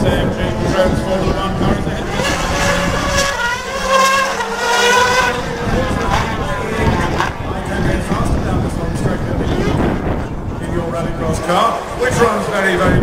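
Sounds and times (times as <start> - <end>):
car engine revving hard: 0.4 - 8.2.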